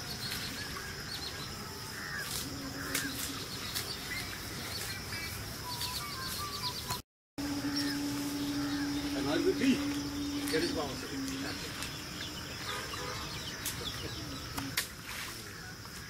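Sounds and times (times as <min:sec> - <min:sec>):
birds chirping and calling: 0:00.1 - 0:14.9
steady high-pitched note: 0:07.4 - 0:13.6.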